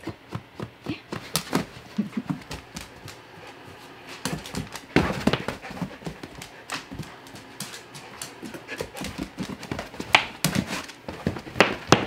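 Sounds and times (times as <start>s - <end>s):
dog claws clicking on floor: 4.1s - 12.0s.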